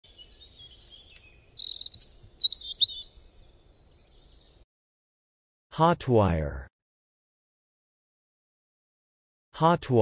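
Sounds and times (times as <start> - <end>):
songbirds singing and chirping: 0.0 - 4.7.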